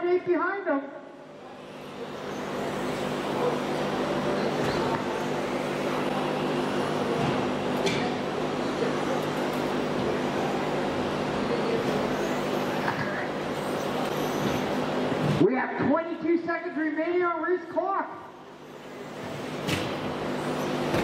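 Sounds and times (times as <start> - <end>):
radio-controlled cars running: 1.6 - 15.0, 18.5 - 21.0.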